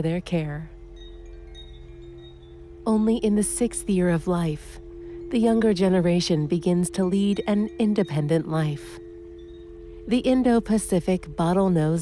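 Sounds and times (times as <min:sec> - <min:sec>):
held low chord: 0:00.0 - 0:12.0
thin chime-like high notes: 0:00.7 - 0:12.0.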